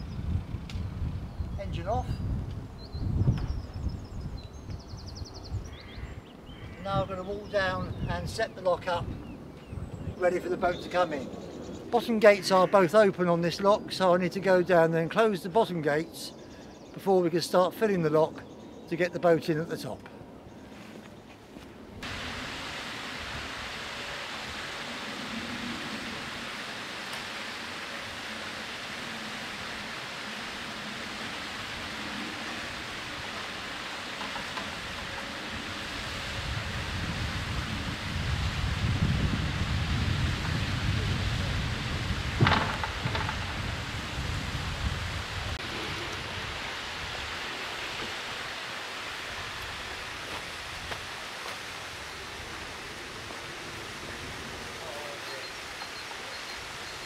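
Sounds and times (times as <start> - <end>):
outdoor hiss: 22.0 - 57.0
low rumble of lock gate: 41.8 - 44.1.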